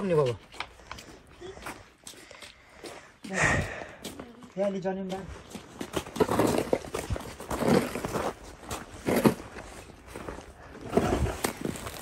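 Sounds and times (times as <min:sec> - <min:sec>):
snow shovel scraping icy path: 0:06.1 - 0:10.0, 0:10.7 - 0:12.0.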